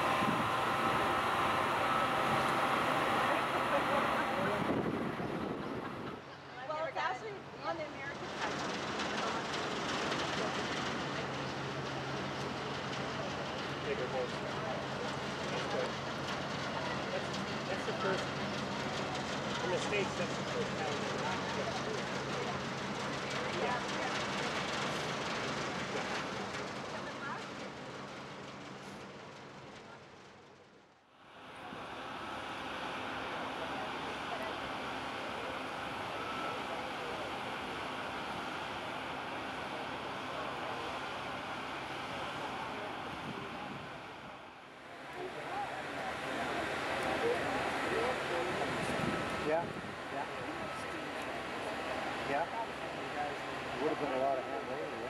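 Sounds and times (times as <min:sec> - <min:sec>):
churned water rushing: 0:00.0 - 0:06.2, 0:31.4 - 0:54.2
ship engines humming: 0:00.0 - 0:30.4, 0:31.0 - 0:55.0
faint voices: 0:00.0 - 0:55.0.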